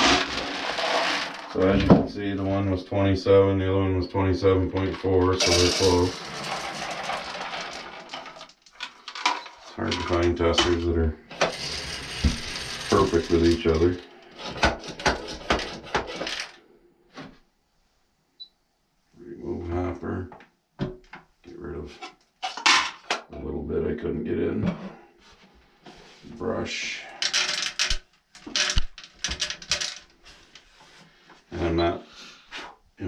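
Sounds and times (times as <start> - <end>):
corn kernels pouring into hopper: 0.0 - 1.8, 5.3 - 8.6, 11.4 - 14.0
people talking: 1.6 - 6.2, 9.8 - 11.2, 12.9 - 14.0, 19.2 - 20.3, 21.5 - 22.0, 23.3 - 24.9, 26.2 - 27.1, 31.5 - 32.1.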